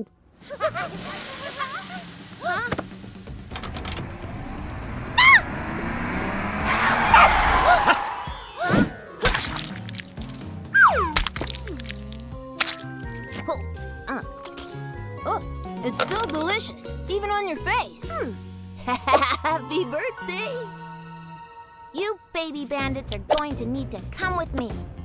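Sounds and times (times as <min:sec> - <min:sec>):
rushing noise: 0:00.8 - 0:08.7
short high cries: 0:05.2 - 0:05.5, 0:06.7 - 0:08.8
cartoon background music: 0:07.8 - 0:25.0.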